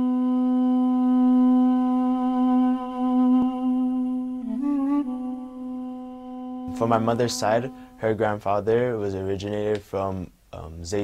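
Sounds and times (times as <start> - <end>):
duduk holding low note: 0.0 - 8.4.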